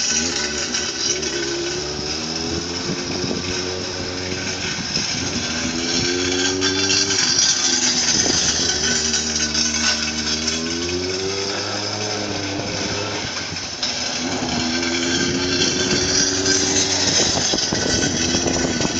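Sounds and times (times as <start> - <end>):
motorcycle engine under throttle: 0.0 - 18.9.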